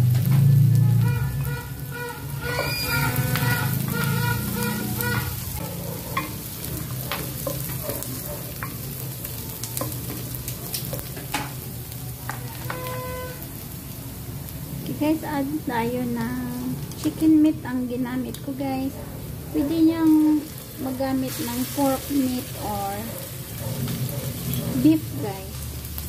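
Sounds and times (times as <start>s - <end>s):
onion and garlic sizzling in oil: 0.0s - 26.0s.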